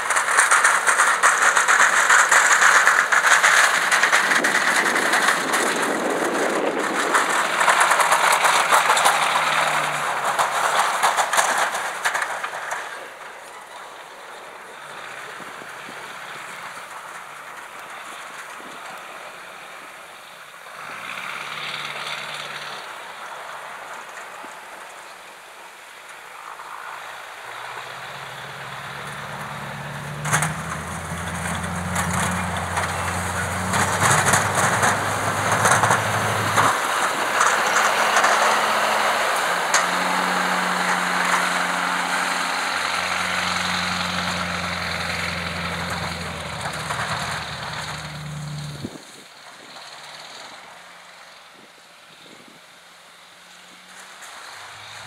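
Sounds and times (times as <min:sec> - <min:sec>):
diesel truck engine working: 0:00.0 - 0:24.8, 0:26.3 - 0:55.0
plow scraping snow: 0:00.0 - 0:55.0.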